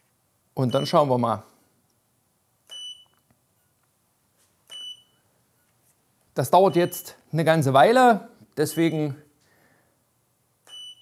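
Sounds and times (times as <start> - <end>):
short high beep: 10.7 - 11.0.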